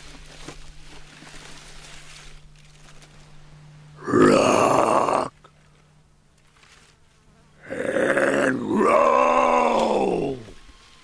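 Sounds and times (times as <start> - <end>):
person groaning with effort: 4.0 - 5.4, 7.6 - 10.6.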